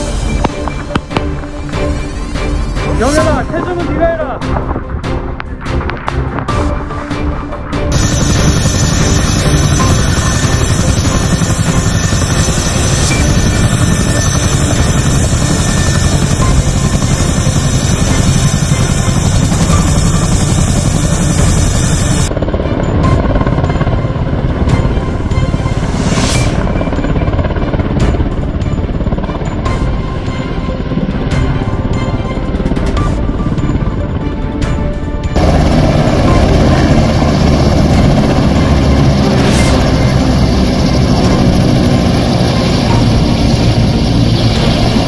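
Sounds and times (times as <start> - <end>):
background music: 0.0 - 45.0
helicopter engines and rotors: 0.0 - 45.0.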